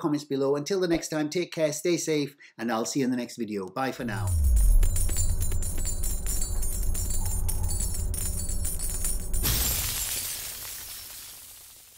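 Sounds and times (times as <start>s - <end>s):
jingly outro music: 4.1s - 9.9s
crash sound effect: 4.1s - 11.9s.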